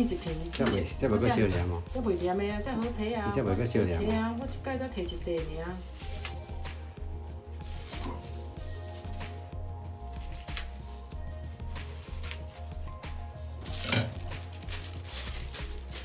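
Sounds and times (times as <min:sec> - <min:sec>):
background music with low beat: 0:00.0 - 0:16.0
scissors snipping: 0:06.0 - 0:06.8, 0:10.2 - 0:10.8, 0:11.8 - 0:12.6.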